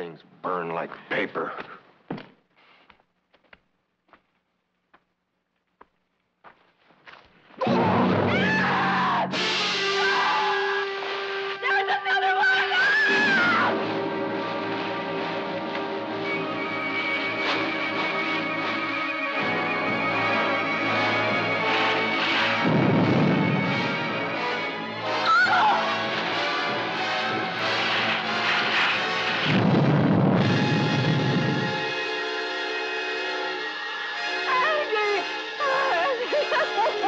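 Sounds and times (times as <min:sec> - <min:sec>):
suspenseful orchestral music: 0:07.6 - 0:37.0.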